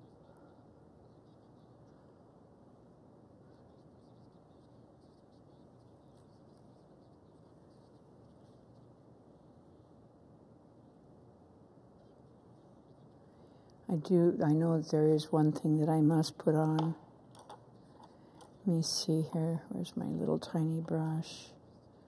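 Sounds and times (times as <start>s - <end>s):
steady low hiss: 0.0s - 22.0s
paintbrush scratching canvas: 3.4s - 9.5s.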